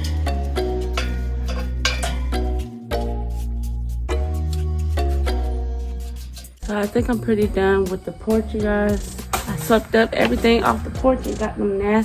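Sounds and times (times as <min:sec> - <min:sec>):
percussion hits: 0:00.0 - 0:11.6
background music with bass and chords: 0:00.0 - 0:11.8.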